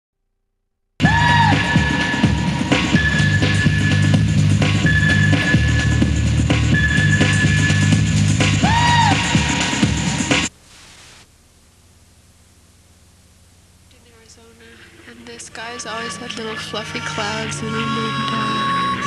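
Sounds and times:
music with drum beat and bass: 1.0 - 10.5
high held tone: 15.6 - 19.0.

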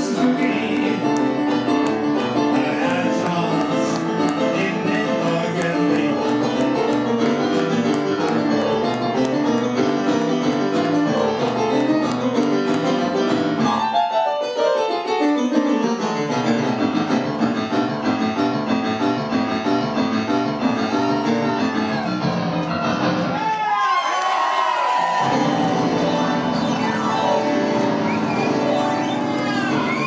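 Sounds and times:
piano playing dense chords: 0.0 - 23.4, 24.7 - 30.0.

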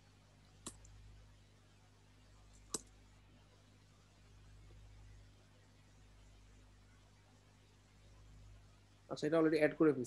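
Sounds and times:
faint room hum: 0.0 - 10.0.

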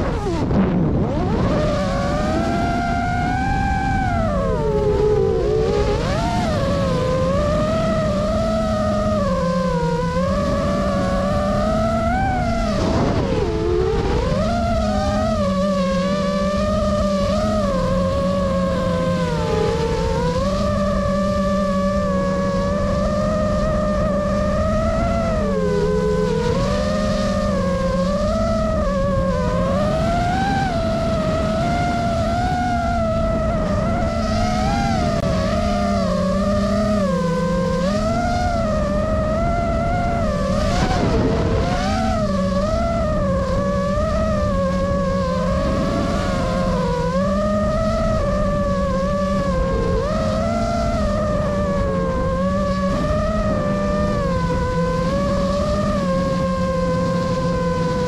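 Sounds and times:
drone motors whining: 0.0 - 58.0.

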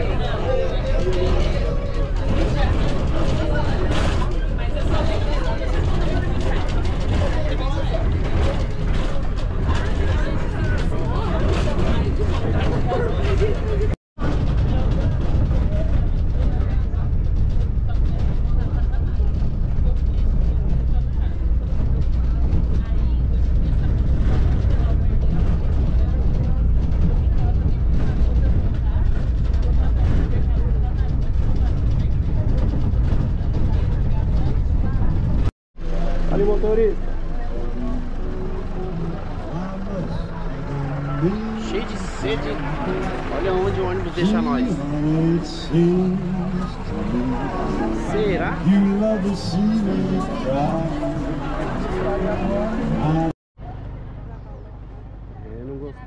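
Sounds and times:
bus engine and road rumble: 0.0 - 56.0
outdoor noise: 0.0 - 56.0
voices: 0.0 - 56.0.

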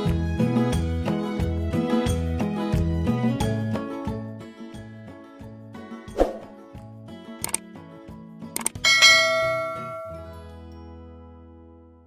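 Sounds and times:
soft background music: 0.0 - 12.0
mouse button clicks: 8.6 - 8.8
notification bell ding: 8.6 - 10.4.

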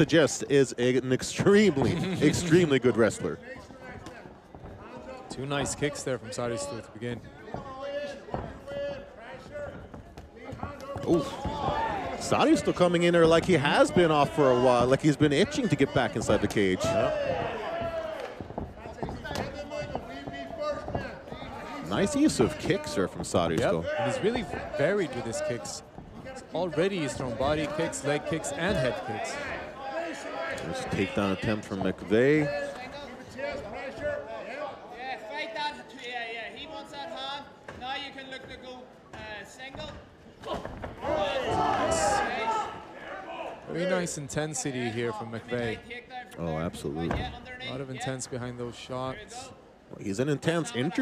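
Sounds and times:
people shouting: 10.9 - 12.8, 16.7 - 18.4, 40.4 - 43.6.

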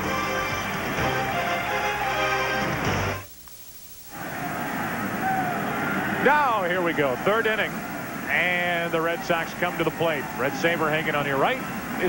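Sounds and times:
sports broadcast music: 0.0 - 3.4, 4.0 - 12.0
ballpark crowd noise: 4.1 - 12.0.

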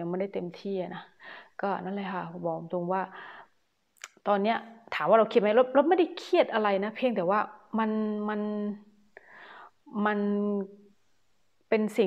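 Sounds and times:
soft breath: 1.2 - 1.6, 3.1 - 3.6, 9.2 - 9.9
mouth click: 4.0 - 4.2.

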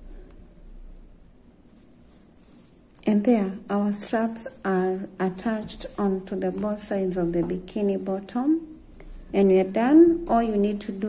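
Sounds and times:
yarn rustling: 1.6 - 3.0.

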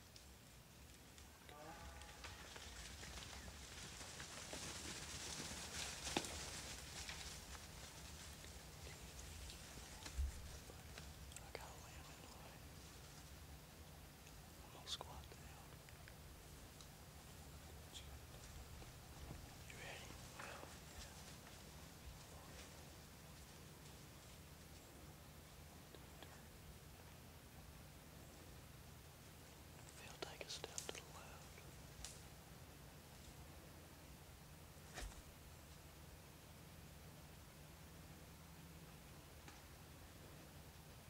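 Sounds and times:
faint low hum: 0.0 - 41.0
faint ticks: 0.1 - 4.8, 5.8 - 13.4, 15.0 - 17.0, 29.7 - 32.3
faint whispering: 1.3 - 3.9, 8.0 - 13.2, 14.4 - 16.2, 17.4 - 23.0, 25.7 - 26.6, 29.8 - 31.8.

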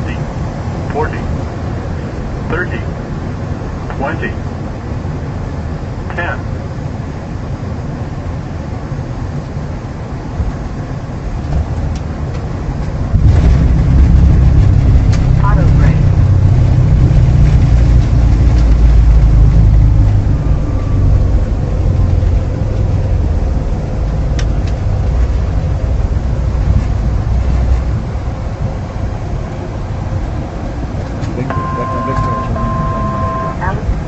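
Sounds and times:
rush of air and engines: 0.0 - 34.0
loud low rumble: 10.5 - 34.0.

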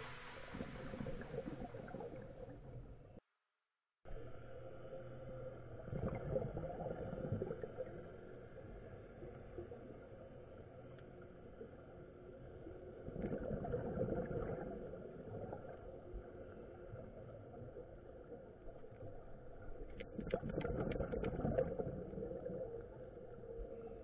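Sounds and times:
underwater bubbles rushing: 0.0 - 3.2, 5.4 - 10.4, 11.4 - 24.0
faint steady hum: 4.1 - 20.0.

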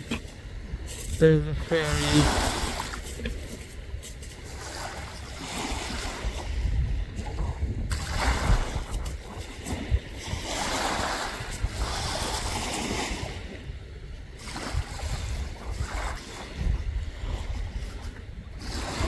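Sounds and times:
small waves washing on beach: 0.0 - 19.0
wind buffeting microphone: 0.0 - 19.0.

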